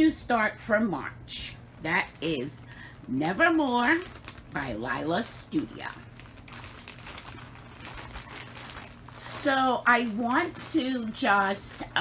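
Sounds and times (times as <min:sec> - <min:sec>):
low steady hum: 0:00.0 - 0:12.0
rustling of objects handled: 0:03.2 - 0:12.0.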